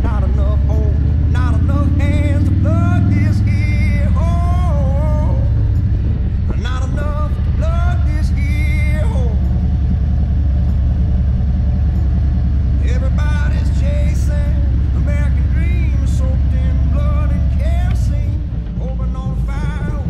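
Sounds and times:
motorcycle engine rumble: 0.0 - 20.0
road noise: 0.0 - 20.0
song with singing voice: 0.0 - 20.0.

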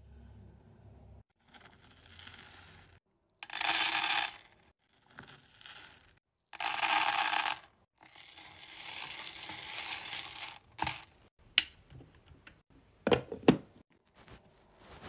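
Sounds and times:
wax beads rattling into metal pot: 1.8 - 4.5, 5.1 - 11.1.

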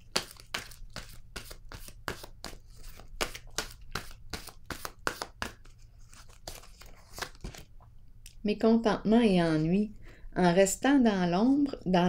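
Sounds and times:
cards shuffled by hand: 0.0 - 7.7.

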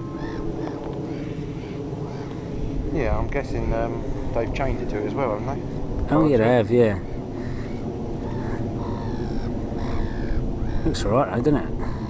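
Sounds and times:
birds calling: 0.0 - 12.0
steady low rumble: 0.0 - 12.0.

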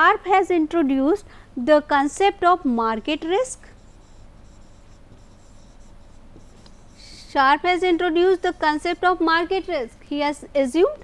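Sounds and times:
stylus scratching on tablet: 3.1 - 9.7.

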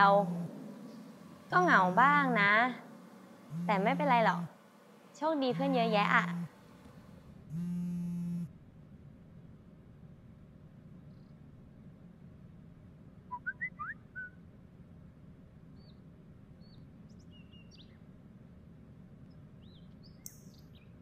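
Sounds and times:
birds chirping: 0.0 - 7.1, 16.6 - 18.0, 19.2 - 21.0
faint room hum: 0.0 - 21.0.

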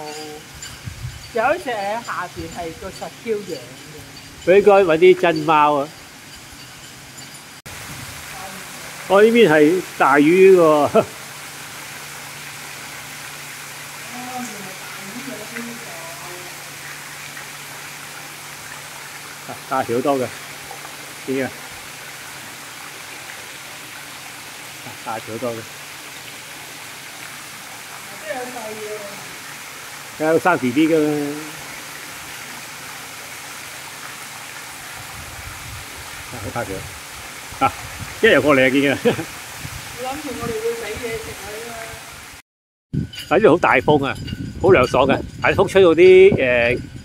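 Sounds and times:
fountain water splashing: 0.0 - 42.4.

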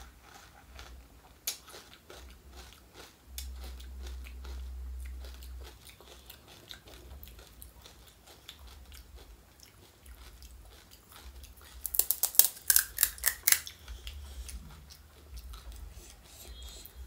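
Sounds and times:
mouth-close chewing: 0.2 - 17.0
crisp shell crunching: 11.8 - 13.7.

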